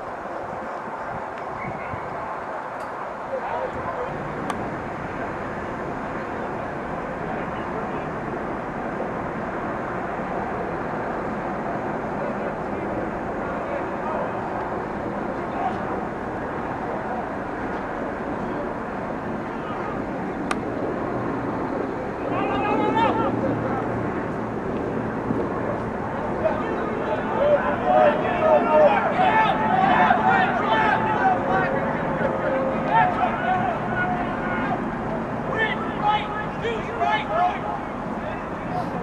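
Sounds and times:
steady rumbling noise: 0.0 - 39.0
faint shouting of players: 22.2 - 23.9, 26.2 - 39.0.

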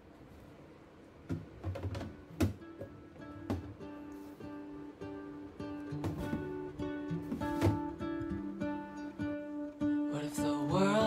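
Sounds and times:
acoustic guitar music: 1.6 - 11.0.

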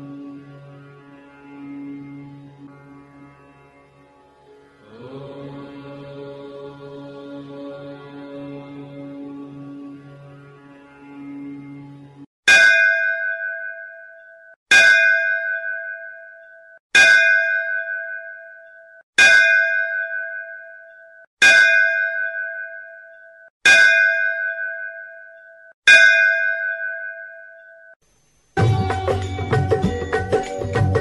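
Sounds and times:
soft musical drone: 0.0 - 12.2
ringing bell strikes: 12.5 - 28.0, 28.6 - 31.0.

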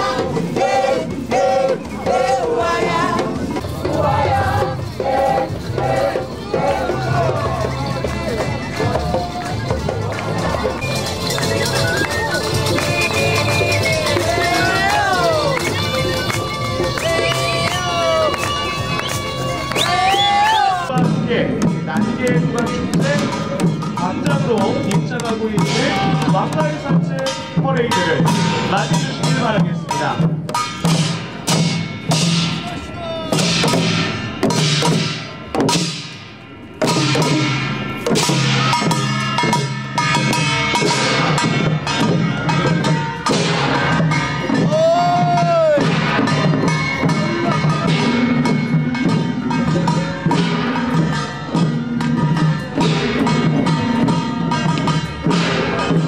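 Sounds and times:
tambourines: 2.6 - 20.8
cymbals crashing: 2.7 - 56.0.

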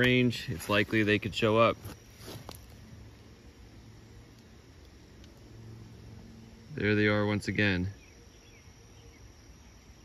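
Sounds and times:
crickets trilling: 0.0 - 10.0
low background rumble: 0.0 - 10.0.

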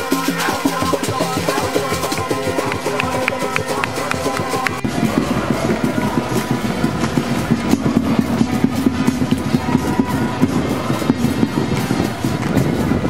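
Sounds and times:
marching crowd of voices: 0.0 - 13.0
quick irregular beats: 0.0 - 13.0.

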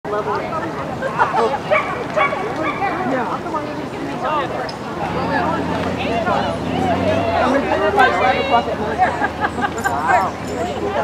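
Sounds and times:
people's voices: 0.1 - 11.0.

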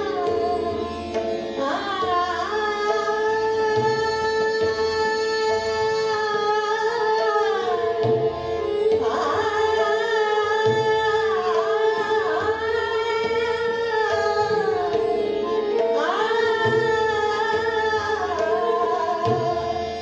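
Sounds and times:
tanpura and harmonium drone: 0.0 - 20.0
woman singing classical vocals: 0.0 - 20.0.

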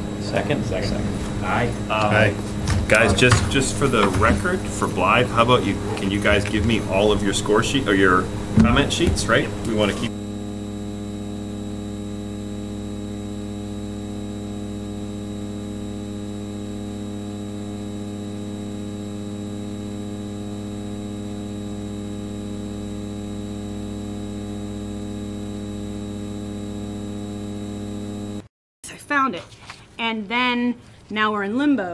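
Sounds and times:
electrical mains hum: 0.0 - 28.5.

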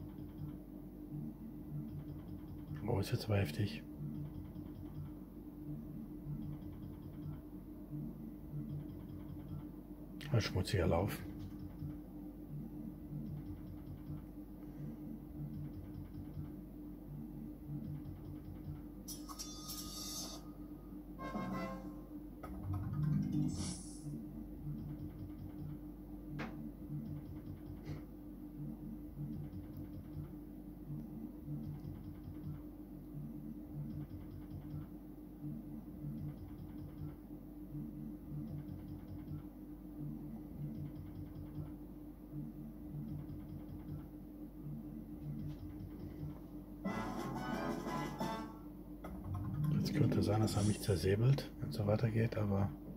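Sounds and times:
slot machine effect sounds: 19.1 - 20.4, 21.2 - 22.0, 46.9 - 48.6
slot machine game music: 21.2 - 22.1, 46.9 - 48.6.

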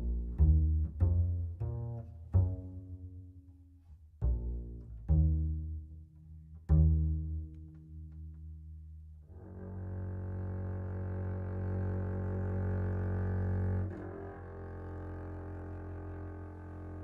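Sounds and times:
bowed low string instrument: 0.0 - 17.0.

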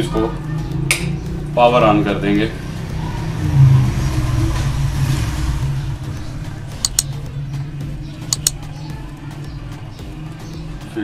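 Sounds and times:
sharp clicks: 6.8 - 7.2, 8.2 - 8.7.

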